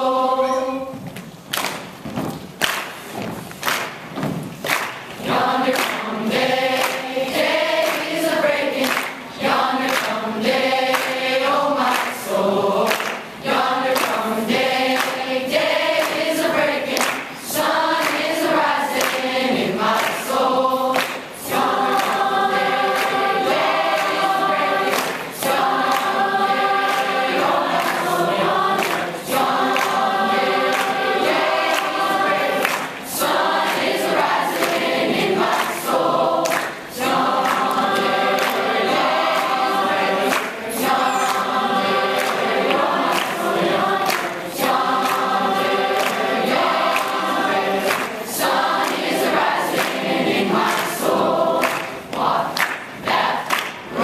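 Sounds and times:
mixed choir singing in harmony: 0:00.0 - 0:01.4, 0:04.7 - 0:54.0.

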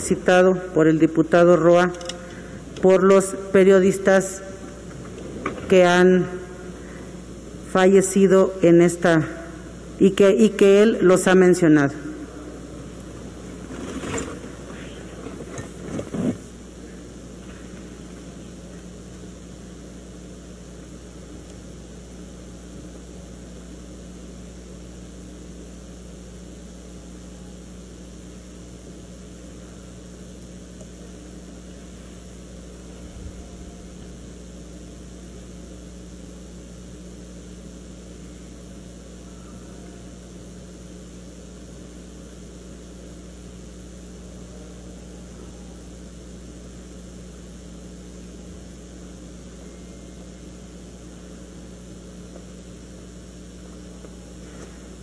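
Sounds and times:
room hum and hiss: 0:00.0 - 0:55.0.

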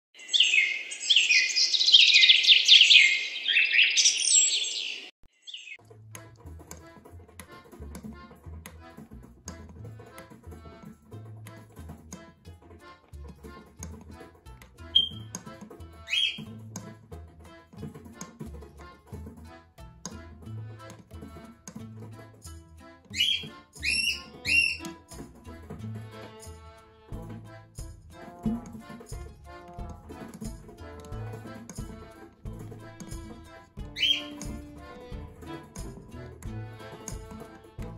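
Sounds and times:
cockatiel chirping: 0:00.2 - 0:05.8, 0:15.0 - 0:15.3, 0:16.1 - 0:16.4, 0:23.1 - 0:24.9, 0:34.0 - 0:34.4
background music with beat: 0:05.8 - 0:37.9.

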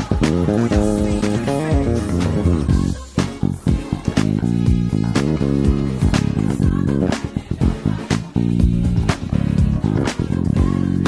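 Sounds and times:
bass guitar played fingerstyle: 0:00.0 - 0:11.0.

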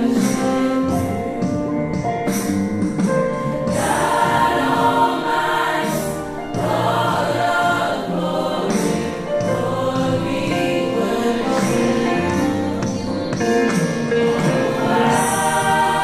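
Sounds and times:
electric bass guitar: 0:00.0 - 0:16.0
keyboard: 0:00.0 - 0:16.0
gospel choir singing: 0:03.5 - 0:16.0.

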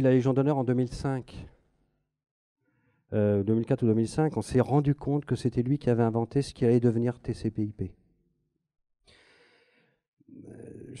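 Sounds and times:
breath into microphone: 0:02.6 - 0:03.1, 0:09.1 - 0:10.0.

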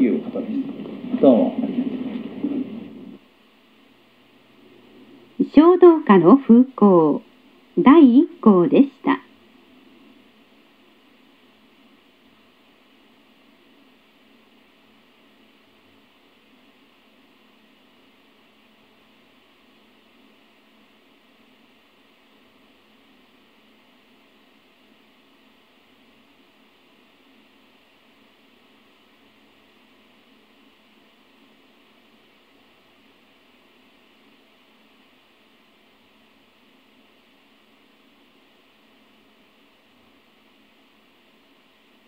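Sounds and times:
faint recording hiss: 0:00.0 - 0:42.0.

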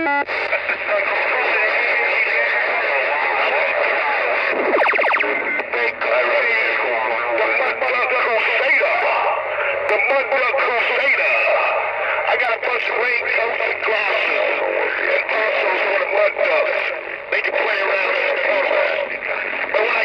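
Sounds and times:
cb radio chatter: 0:00.0 - 0:20.0.

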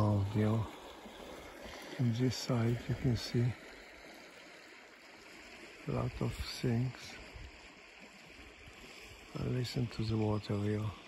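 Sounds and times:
creek water flowing: 0:00.0 - 0:11.0.

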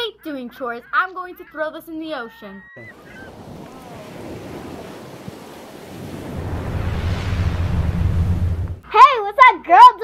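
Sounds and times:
ocean waves breaking: 0:02.8 - 0:08.9.

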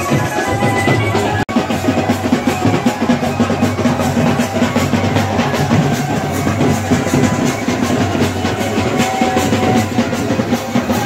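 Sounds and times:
crowd hubbub: 0:00.0 - 0:11.0
drums beating fast rhythm: 0:00.0 - 0:11.0.

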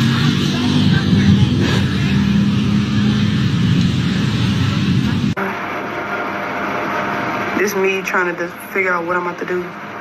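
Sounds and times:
traffic noise: 0:00.0 - 0:05.5
car engine rumble: 0:00.0 - 0:08.5.

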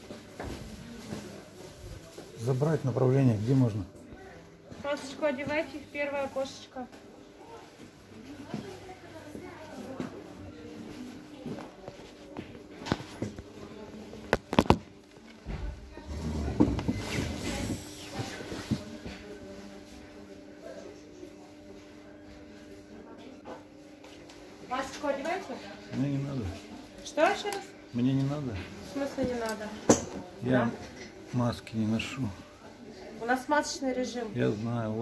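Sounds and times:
faint background voices: 0:00.0 - 0:35.0.

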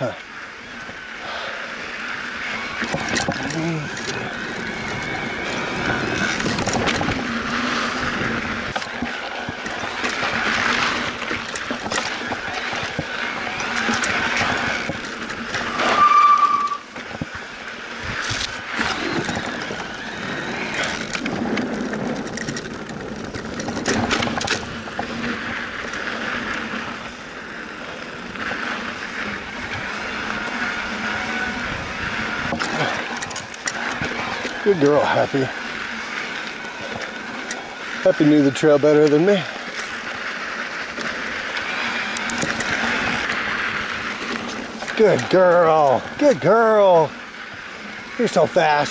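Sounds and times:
bike tyres rolling over wood and dirt: 0:00.0 - 0:48.9
loud high steady tone: 0:15.6 - 0:17.0.

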